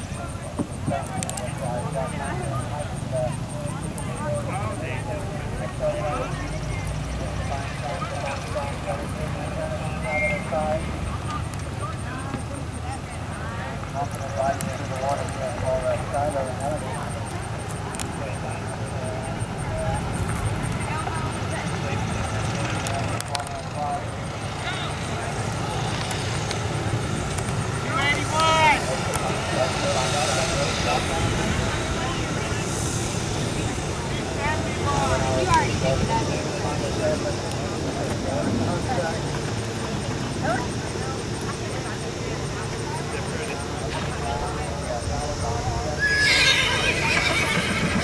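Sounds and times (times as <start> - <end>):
distant voices talking: 0.0 - 48.0.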